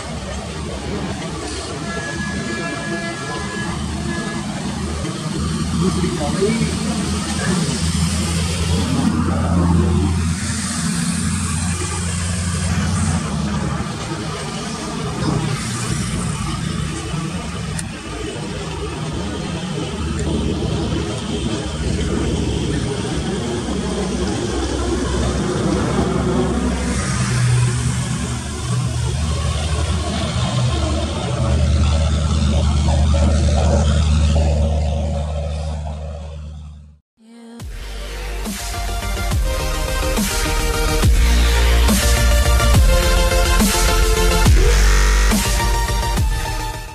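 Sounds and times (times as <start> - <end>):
low hum: 0.0 - 37.0, 37.6 - 46.9
train rumbling along track: 0.0 - 37.0.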